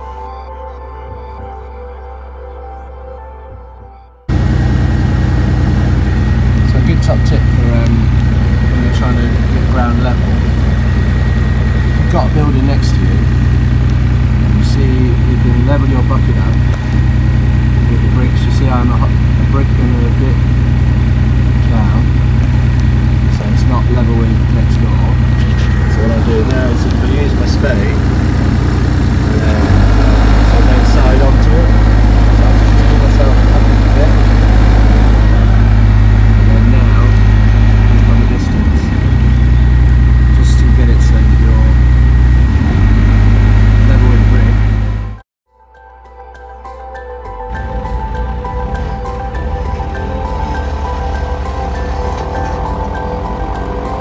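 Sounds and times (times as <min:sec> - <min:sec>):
excavator diesel engine running: 0:04.3 - 0:45.2, 0:47.4 - 0:54.0.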